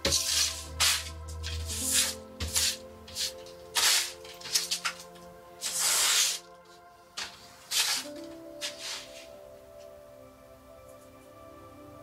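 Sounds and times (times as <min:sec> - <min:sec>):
brush sweeping tabletop: 0:00.0 - 0:09.4.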